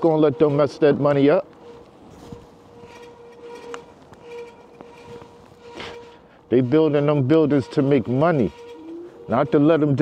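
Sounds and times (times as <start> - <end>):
electric bike motor hum: 0.0 - 10.0
road noise: 0.0 - 10.0.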